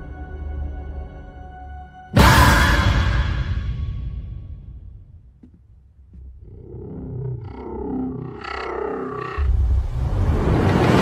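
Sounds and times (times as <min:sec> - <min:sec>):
growl-like pitched tones: 0:06.4 - 0:09.9.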